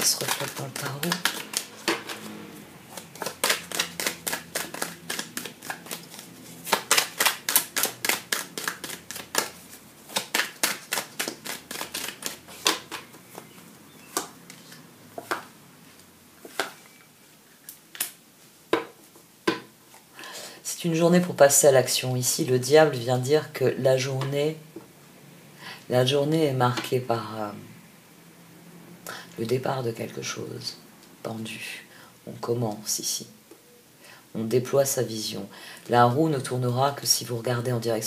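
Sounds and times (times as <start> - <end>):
cards being shuffled: 0.0 - 15.5, 16.4 - 16.8.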